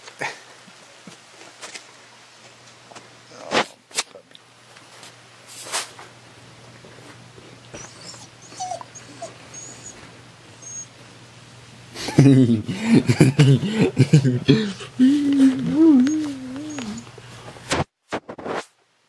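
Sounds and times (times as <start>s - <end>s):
dog whimpering: 7.7s - 11.0s, 15.2s - 17.1s.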